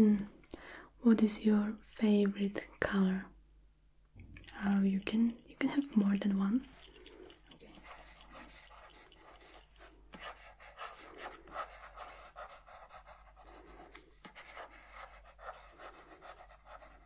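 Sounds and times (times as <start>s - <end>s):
soft breathing: 0.4s - 1.0s, 6.6s - 12.0s
pen scratching on paper: 7.6s - 17.0s.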